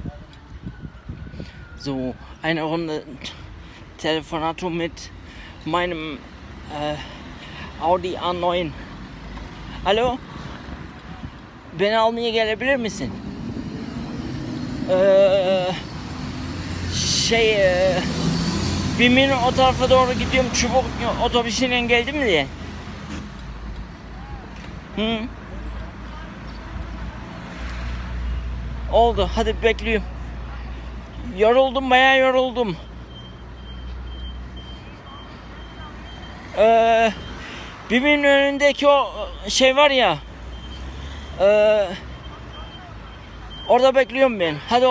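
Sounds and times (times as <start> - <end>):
road traffic rumble: 0.0 - 44.9
vehicle reversing alarm beeping: 12.8 - 22.5, 30.7 - 44.9
man speaking: 19.0 - 22.6.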